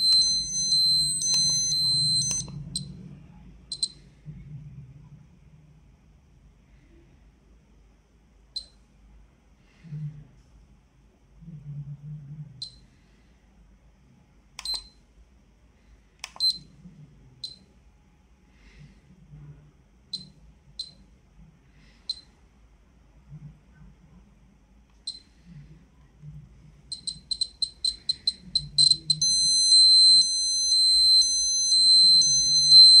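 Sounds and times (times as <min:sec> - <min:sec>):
short high beeps: 0:00.0 - 0:02.5
pulsing high-pitched alarm tone: 0:00.0 - 0:02.9, 0:27.0 - 0:33.0
short high-pitched beeps: 0:00.0 - 0:02.9, 0:26.9 - 0:33.0.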